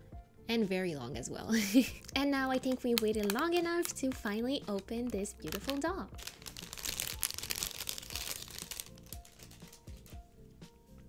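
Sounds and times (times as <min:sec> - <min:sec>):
soft background music: 0:00.0 - 0:11.0
plastic packaging crinkling: 0:01.9 - 0:10.2.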